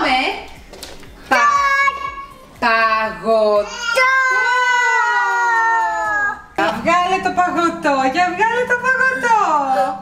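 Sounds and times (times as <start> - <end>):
toddler calling out: 3.6 - 6.4.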